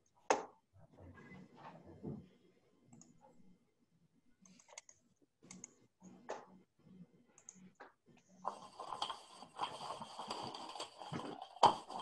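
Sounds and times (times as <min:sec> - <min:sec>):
faint irregular clicks: 0:02.9 - 0:03.2, 0:04.4 - 0:06.4, 0:07.4 - 0:08.3.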